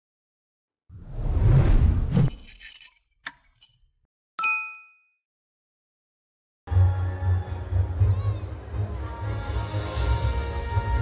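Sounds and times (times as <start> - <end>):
whoosh: 0.9 - 2.3
notification bell ding: 4.4 - 5.2.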